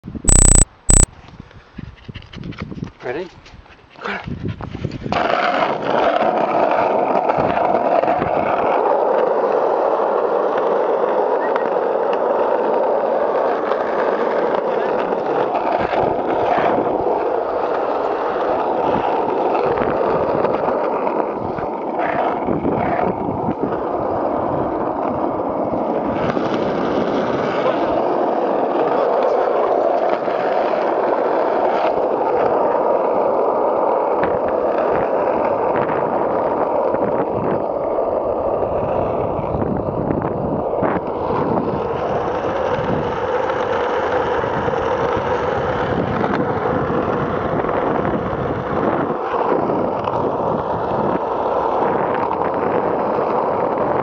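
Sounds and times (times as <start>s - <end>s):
skateboard wheels rolling on asphalt: 1.2s - 54.0s.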